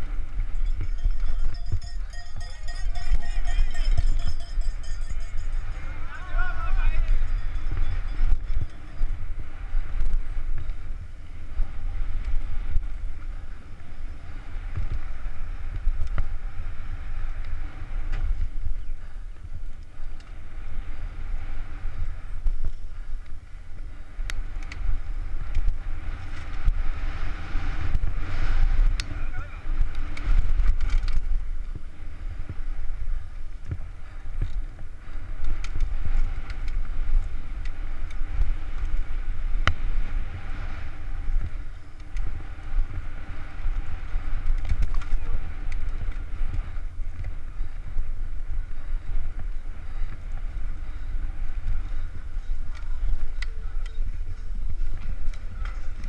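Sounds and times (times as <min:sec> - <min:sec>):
wind buffeting microphone: 0:00.0 - 0:56.0
bike clicks and knocks: 0:22.4 - 0:26.8, 0:28.8 - 0:32.7, 0:33.3 - 0:39.9, 0:43.6 - 0:51.0, 0:51.6 - 0:56.0.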